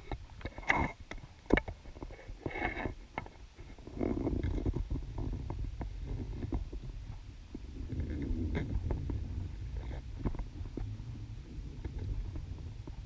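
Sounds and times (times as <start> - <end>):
small clicks and knocks: 0.0 - 6.8
underwater rumble: 2.0 - 13.0.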